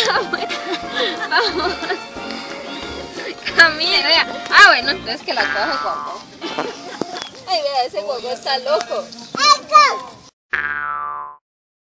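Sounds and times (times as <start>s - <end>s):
cartoon boing: 10.5s - 11.4s.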